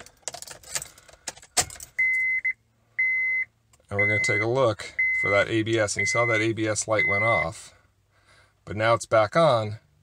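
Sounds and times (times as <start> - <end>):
car keys jangling: 0.0 - 2.0
dashboard warning chime beeps: 2.0 - 7.6.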